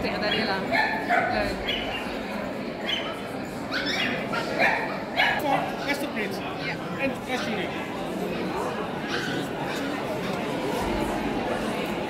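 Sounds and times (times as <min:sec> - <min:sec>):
murmur of voices: 0:00.0 - 0:12.0
small dogs yipping and barking: 0:00.3 - 0:02.2, 0:02.8 - 0:05.5.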